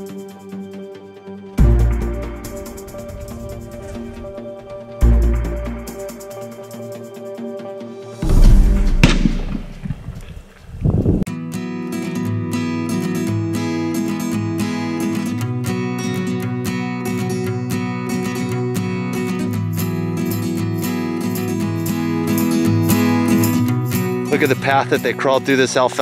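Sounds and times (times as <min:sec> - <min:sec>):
strummed acoustic guitar music: 0:00.0 - 0:08.9, 0:11.3 - 0:26.0
rifle shot: 0:08.2 - 0:10.2.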